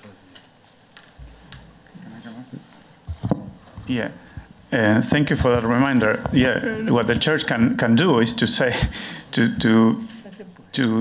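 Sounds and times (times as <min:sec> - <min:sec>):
person chuckling: 0:06.4 - 0:07.2, 0:10.1 - 0:10.6.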